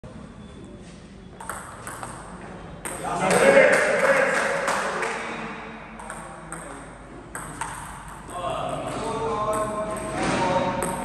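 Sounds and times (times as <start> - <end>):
table tennis ball clicks: 1.4 - 2.2.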